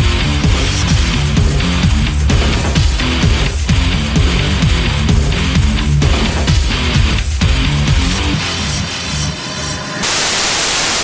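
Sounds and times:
rock music with heavy low notes: 0:00.0 - 0:11.0
tv static hiss: 0:10.0 - 0:11.0.

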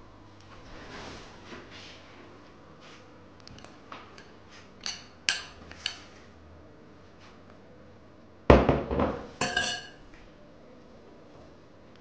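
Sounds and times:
ringing glass clink: 0:09.4 - 0:10.0.

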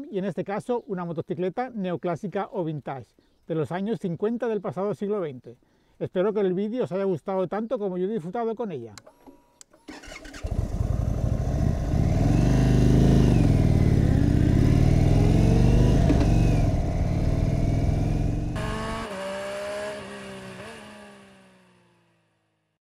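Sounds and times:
motorcycle engine revving: 0:09.9 - 0:22.6
higher tones: 0:11.0 - 0:19.8.

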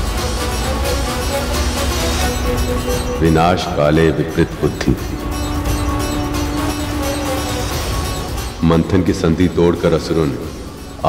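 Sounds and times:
background score music: 0:00.0 - 0:11.0.

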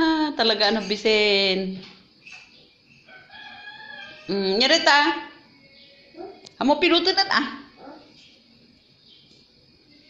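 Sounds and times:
rooster crowing faintly: 0:03.0 - 0:04.4.

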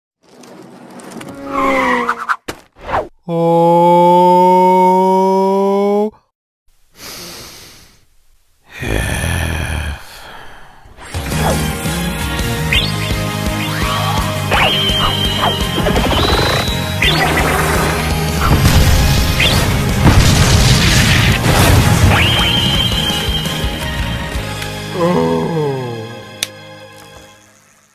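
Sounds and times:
tyre screech: 0:01.0 - 0:02.5
music: 0:11.0 - 0:27.9
distorted booming bass: 0:16.0 - 0:22.5.

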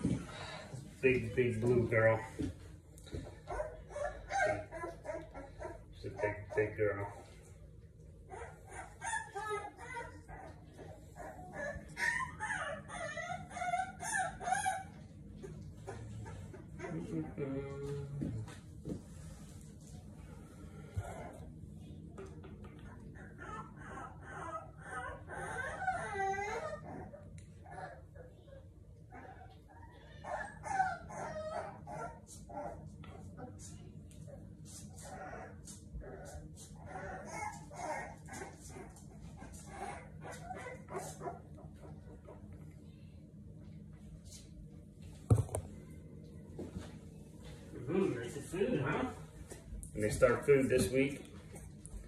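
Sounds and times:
puppy crying and whining: 0:03.2 - 0:07.4, 0:08.2 - 0:17.8, 0:22.8 - 0:33.6, 0:34.8 - 0:42.2.

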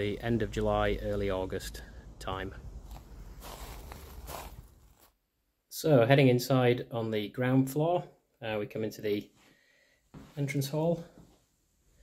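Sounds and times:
man speaking: 0:00.0 - 0:02.8, 0:10.4 - 0:11.2
soft rustle: 0:00.1 - 0:05.2.

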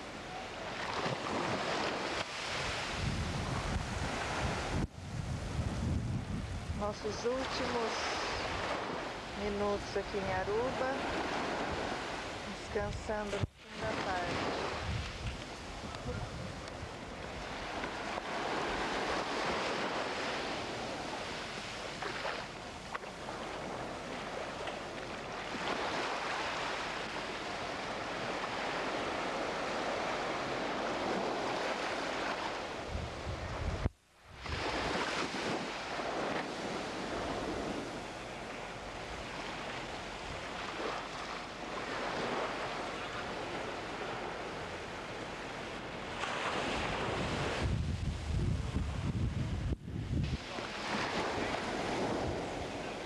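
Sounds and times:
surf washing on beach: 0:00.0 - 0:53.0
wind buffeting microphone: 0:01.0 - 0:21.2, 0:28.0 - 0:38.2, 0:46.5 - 0:53.0.

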